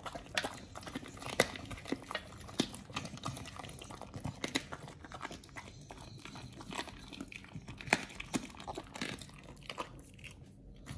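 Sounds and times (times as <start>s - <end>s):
dog chewing and biting food: 0.0s - 10.9s.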